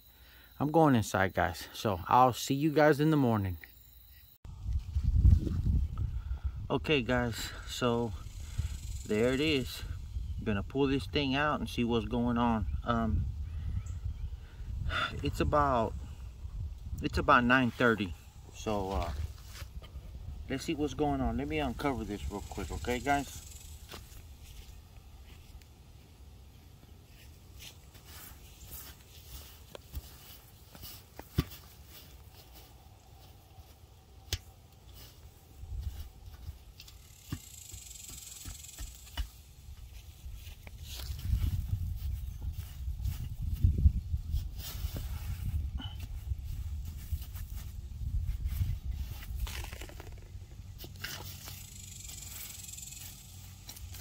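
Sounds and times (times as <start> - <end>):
footsteps: 27.1 - 50.2.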